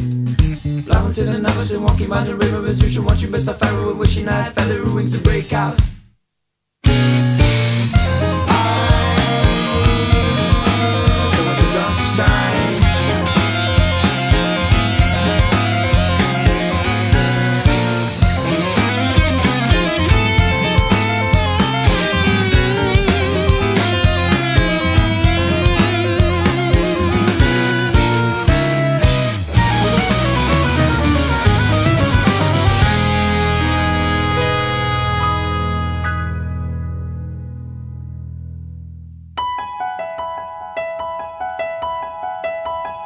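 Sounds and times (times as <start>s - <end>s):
bass: 0.0s - 6.1s, 6.8s - 39.5s
drum kit beat: 0.0s - 6.1s, 6.8s - 35.6s
electric guitar: 6.8s - 38.8s
wavering lead melody: 6.9s - 37.9s.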